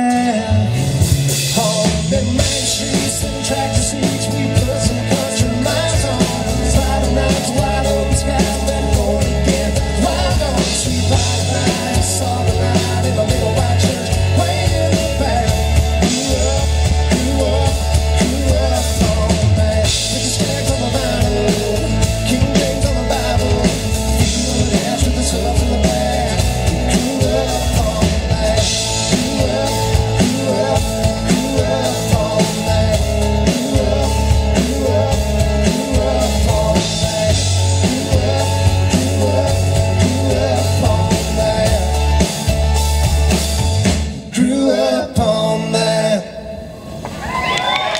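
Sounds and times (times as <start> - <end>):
live country band playing: 0.0 - 47.9
vocals: 0.0 - 47.9.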